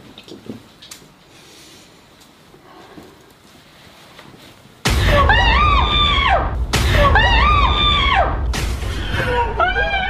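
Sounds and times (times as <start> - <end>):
steady low rumble: 4.8 - 9.7
high-pitched scream: 5.0 - 10.0.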